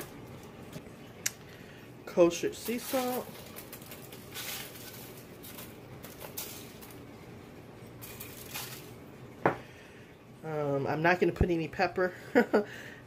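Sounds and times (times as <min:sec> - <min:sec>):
salt sprinkling on vegetables and foil: 0:02.1 - 0:09.2.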